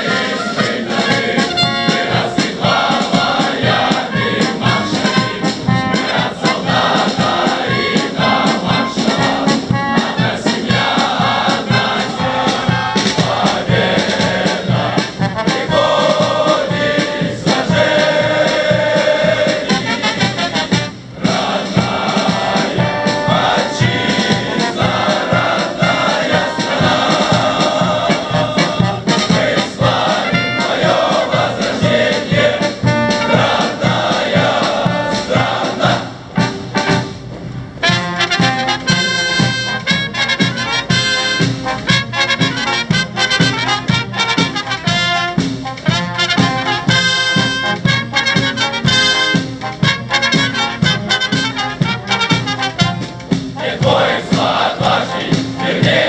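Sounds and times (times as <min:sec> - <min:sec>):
brass band playing march music: 0:00.0 - 0:56.0.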